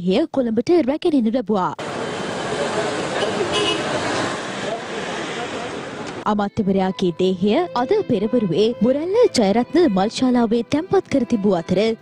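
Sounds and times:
people talking: 0.0 - 1.8, 4.6 - 12.0.

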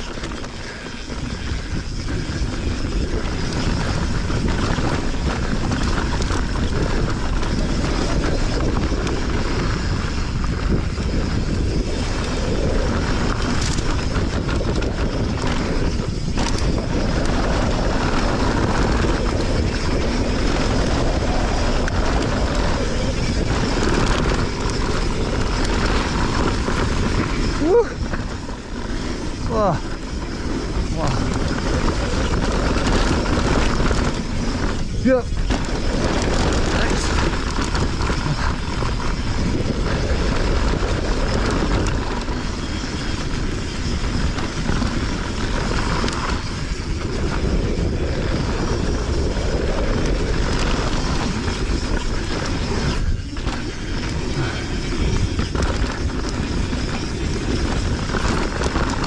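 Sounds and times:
bike rattling over rough ground: 0.0 - 59.0
tyre noise and wind rush: 0.0 - 59.0.

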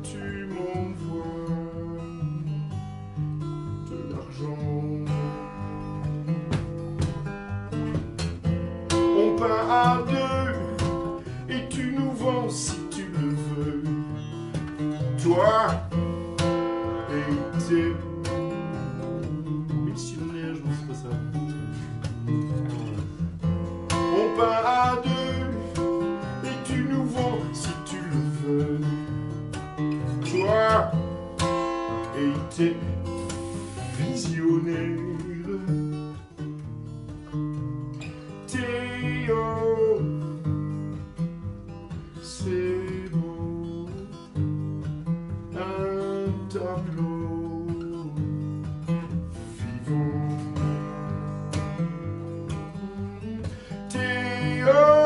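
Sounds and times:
man singing: 0.0 - 2.6, 3.7 - 6.4, 8.9 - 21.8, 23.9 - 31.2, 31.9 - 36.2, 38.3 - 41.0, 42.1 - 44.4, 45.3 - 52.5, 53.4 - 55.0
acoustic guitar strummed and picked: 0.0 - 55.0.

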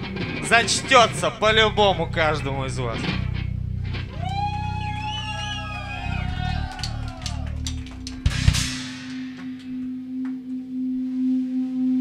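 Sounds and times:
amplified held note droning: 0.0 - 12.0.

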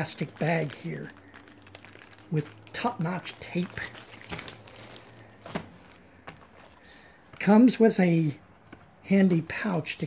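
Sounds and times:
plastic bag rustling: 0.0 - 7.7.

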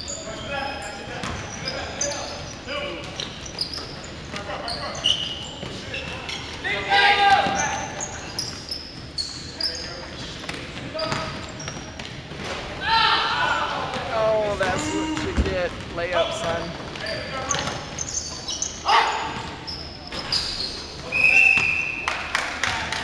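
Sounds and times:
sneakers squeaking on hardwood: 0.0 - 22.0
players calling out: 0.1 - 10.0, 12.6 - 22.0
loud shout: 6.6 - 7.8, 12.8 - 13.9, 18.8 - 19.4
basketball bouncing: 13.9 - 18.0.

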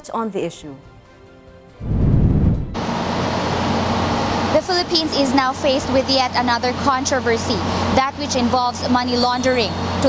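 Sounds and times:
low whooshing rumble: 1.8 - 3.2
low hum: 1.8 - 7.8.

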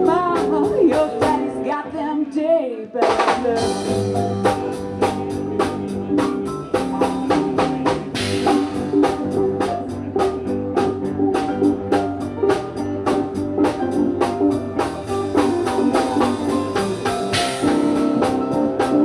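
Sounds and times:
drum kit fast beat: 0.0 - 1.7, 3.0 - 19.0
electric guitar notes: 3.6 - 19.0.

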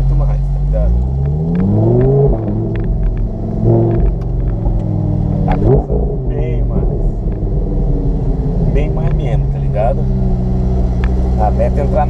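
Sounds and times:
car engine at low revs: 0.0 - 12.0.

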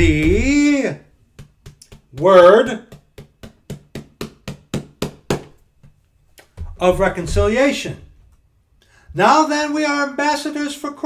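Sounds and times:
fingers tapping book pages: 0.0 - 7.7.

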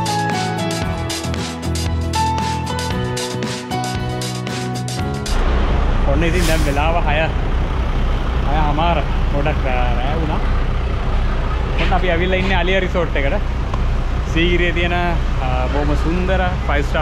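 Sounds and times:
background music: 0.0 - 6.2
coach engine idling: 5.1 - 17.0.

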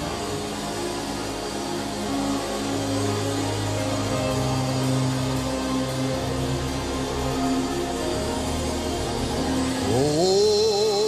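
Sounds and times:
keyboard sustained chords: 0.0 - 11.0
worship band playing slow music: 0.0 - 11.0.

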